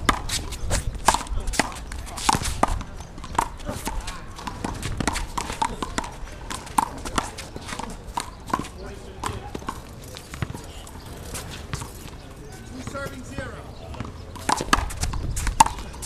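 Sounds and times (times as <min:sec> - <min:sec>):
sneakers scuffing on concrete: 0:00.0 - 0:16.0.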